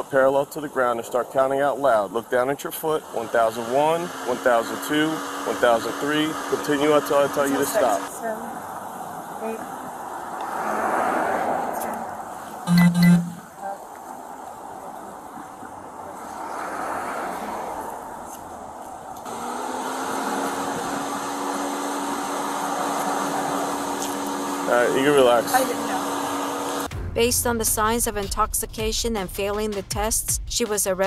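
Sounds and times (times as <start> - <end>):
vehicles passing on road: 0.0 - 26.9.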